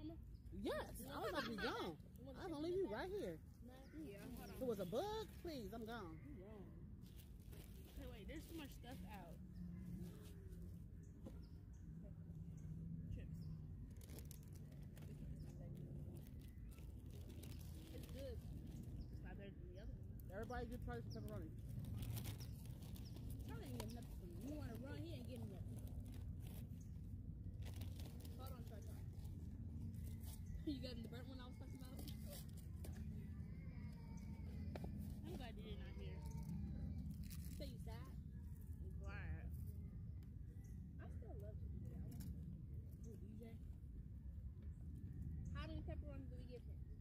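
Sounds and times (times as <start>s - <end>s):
people chatting: 0.0s - 6.7s, 8.0s - 9.4s, 17.8s - 18.5s, 19.2s - 21.5s, 23.4s - 25.9s, 28.2s - 29.2s, 30.6s - 33.3s, 35.2s - 36.5s, 37.5s - 38.2s, 38.8s - 39.5s, 41.0s - 42.2s, 43.0s - 43.6s, 45.6s - 46.8s.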